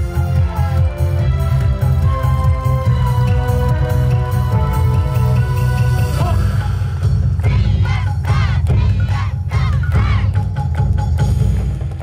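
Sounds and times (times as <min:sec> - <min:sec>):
loud dance music with heavy bass: 0:00.0 - 0:10.5.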